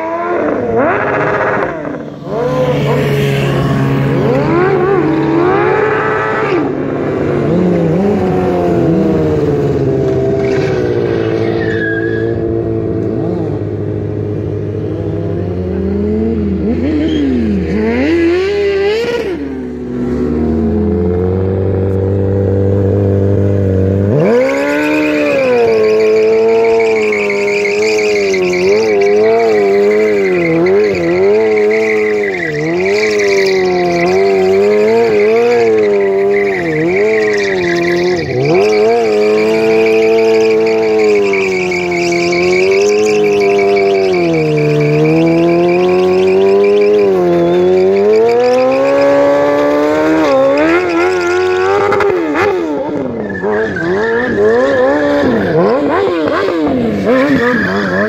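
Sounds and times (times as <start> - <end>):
motorcycle engines revving: 0.0 - 58.0
tyre squeal: 7.6 - 13.5, 14.7 - 19.4, 24.1 - 58.0.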